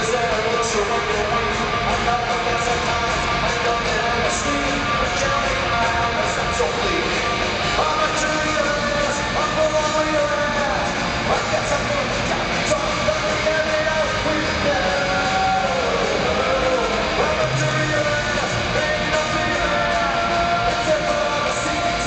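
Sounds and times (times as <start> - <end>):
lead singer's voice: 0.0 - 22.0
punk rock band playing live: 0.0 - 22.0.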